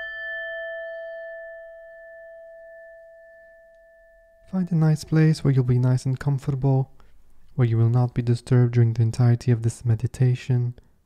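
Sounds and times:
singing bowl ringing: 0:00.0 - 0:04.9.

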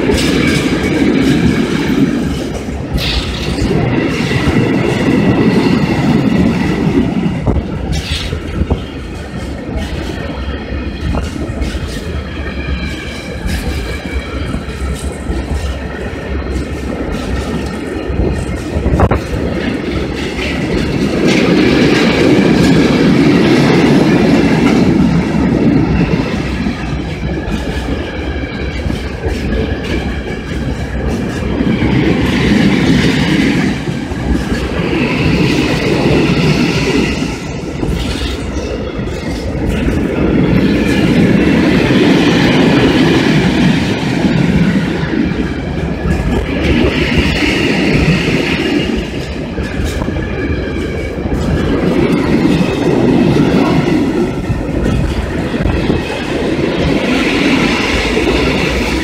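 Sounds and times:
train wheels clattering: 0:00.0 - 0:59.0.

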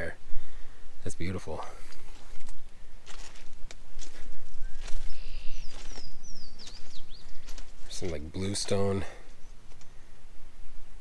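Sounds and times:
wind rumble on microphone: 0:00.0 - 0:08.4
footsteps: 0:01.8 - 0:09.9
songbird singing: 0:04.0 - 0:11.0.

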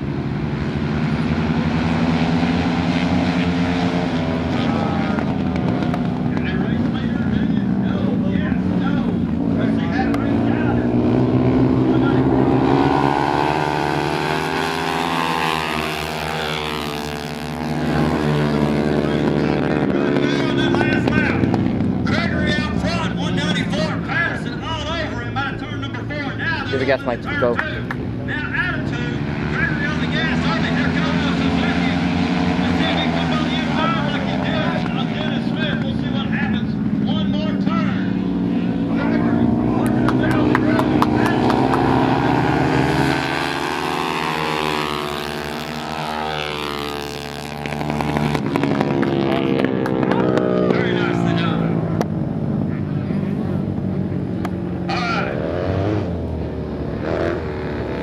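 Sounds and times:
motorcycle engines racing: 0:00.0 - 0:58.0.

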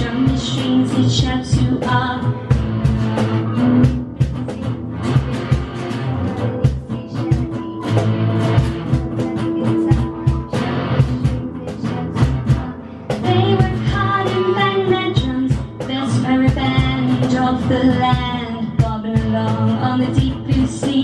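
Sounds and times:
drums playing steady beat: 0:00.0 - 0:21.0
electric guitar: 0:00.0 - 0:21.0.

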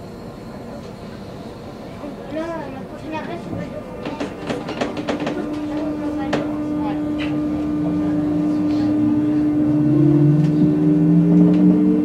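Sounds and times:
electric train hum and whine: 0:00.0 - 0:12.0.

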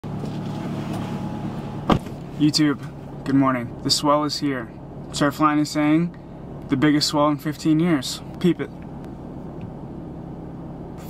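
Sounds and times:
low hum: 0:00.0 - 0:11.0
car door slamming: 0:00.5 - 0:02.2.

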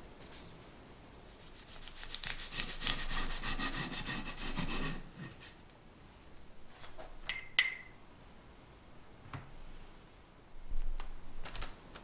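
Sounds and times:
faint paper rustling: 0:00.1 - 0:00.7
bread knife sawing through cake: 0:02.1 - 0:05.2.

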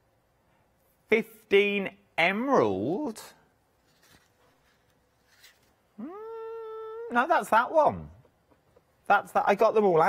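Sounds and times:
person humming: 0:06.0 - 0:07.1.

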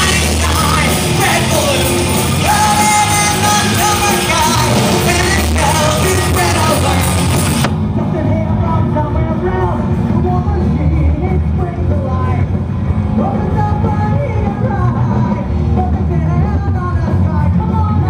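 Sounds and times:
bass: 0:00.0 - 0:18.0
heavy drums: 0:00.0 - 0:18.0
live rock band playing: 0:00.0 - 0:18.0.

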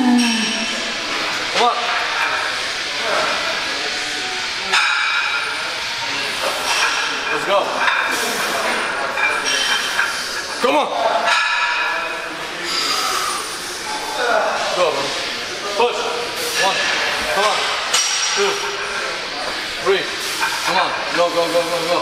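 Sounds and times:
person grunting and breathing: 0:00.0 - 0:00.6.

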